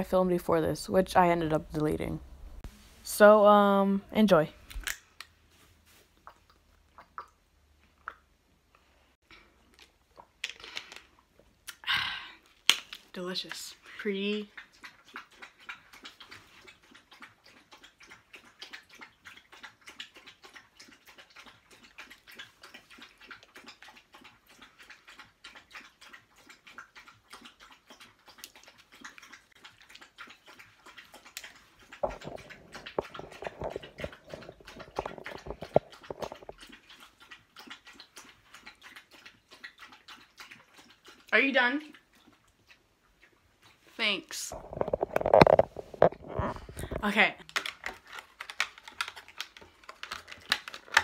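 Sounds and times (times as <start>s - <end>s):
dog eating from a metal bowl: 13.3s - 51.0s
plastic wrapper crackling: 44.5s - 51.0s.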